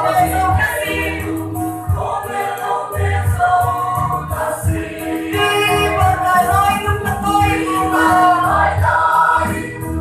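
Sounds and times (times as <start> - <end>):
choir singing a gospel hymn: 0.0 - 10.0.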